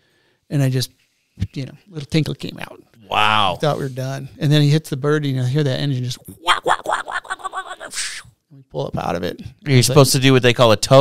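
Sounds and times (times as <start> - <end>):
man imitating helicopter: 6.3 - 8.3.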